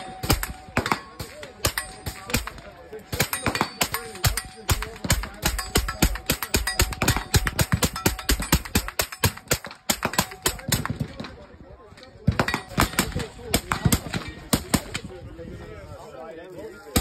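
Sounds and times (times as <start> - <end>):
rapid gunfire: 0.0 - 11.3, 12.3 - 15.0.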